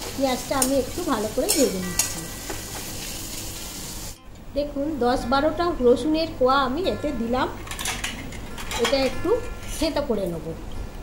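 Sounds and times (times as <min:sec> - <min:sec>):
onions sizzling in oil: 0:00.0 - 0:04.2.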